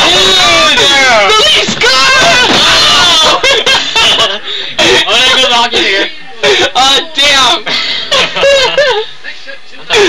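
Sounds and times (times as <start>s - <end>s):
person laughing loudly: 8.0s - 9.1s.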